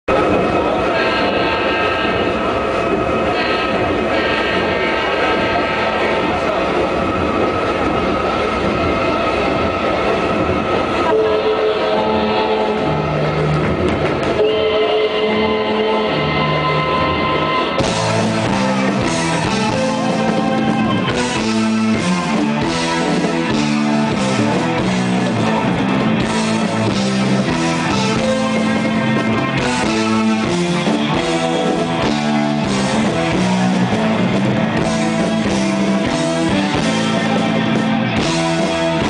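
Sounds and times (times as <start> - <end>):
rock band sustained chords: 0.0 - 39.0
held low bass notes: 16.1 - 39.0.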